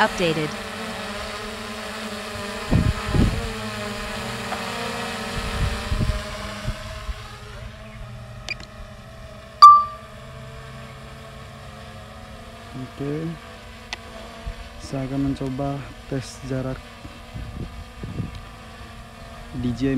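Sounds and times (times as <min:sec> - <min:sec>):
drone propellers buzzing: 0:00.0 - 0:09.6, 0:11.1 - 0:19.9
short beep: 0:09.6 - 0:10.0.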